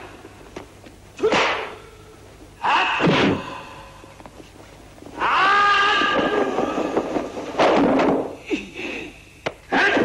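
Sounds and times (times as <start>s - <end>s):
whip-like strike sound: 1.2s - 1.7s.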